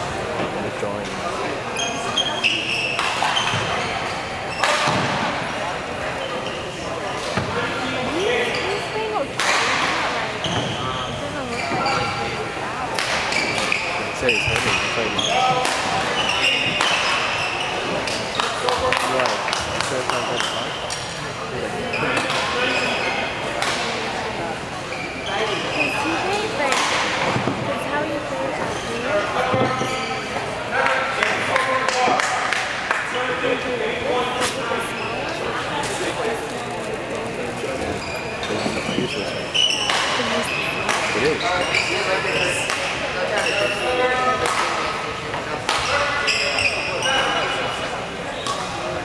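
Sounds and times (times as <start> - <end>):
spectator chatter: 0.0 - 49.0.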